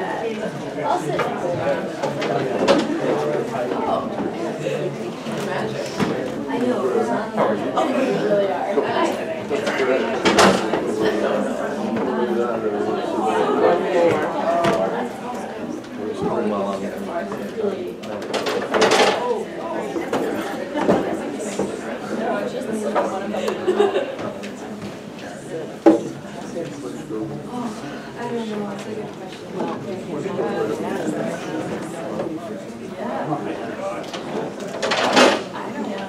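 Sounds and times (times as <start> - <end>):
people chattering: 0.0 - 36.0.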